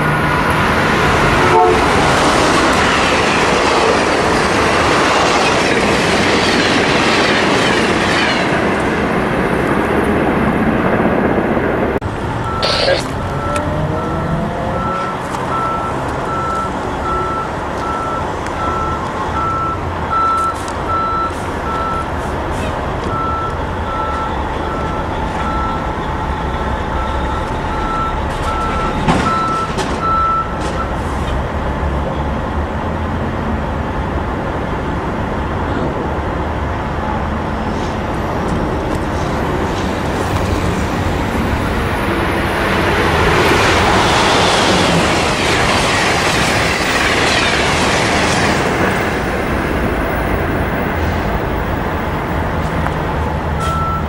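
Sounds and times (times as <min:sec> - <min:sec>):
train wheels rushing on rails: 0:00.0 - 0:12.8, 0:13.6 - 0:54.0
electronic beep: 0:12.4 - 0:22.1, 0:53.6 - 0:54.0.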